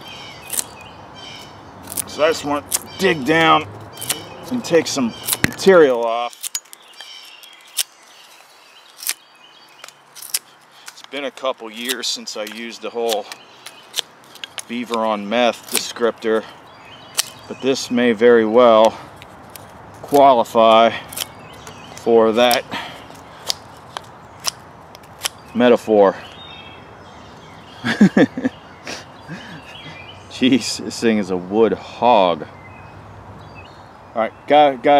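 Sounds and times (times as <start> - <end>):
knife cutting wood: 0.4 - 0.8, 1.8 - 9.2, 9.8 - 16.5, 17.1 - 17.6, 18.8 - 25.6.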